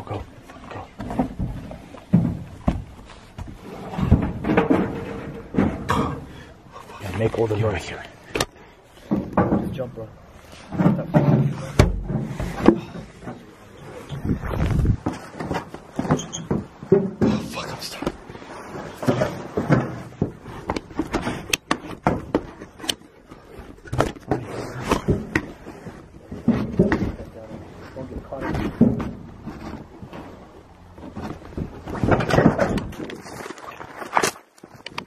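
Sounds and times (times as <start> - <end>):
jacket fabric rustling on microphone: 13.9 - 16.8.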